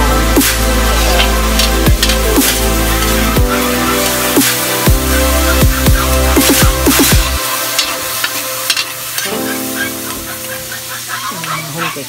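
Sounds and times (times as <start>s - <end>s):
meat sizzling in a wok: 0.0s - 12.0s.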